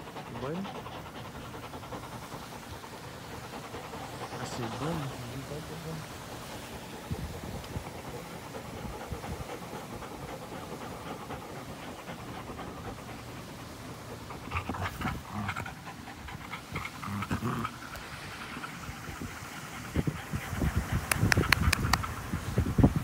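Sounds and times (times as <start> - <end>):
dog panting: 0.0 - 23.0.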